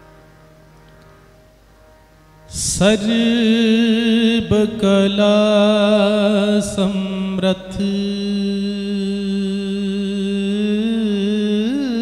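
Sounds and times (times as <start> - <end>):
harmonium drone: 0.0 - 12.0
man singing devotional song: 2.5 - 12.0.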